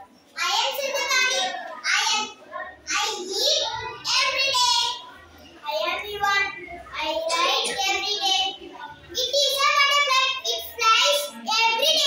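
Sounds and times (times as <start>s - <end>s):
child reciting sing-song: 0.4s - 12.0s.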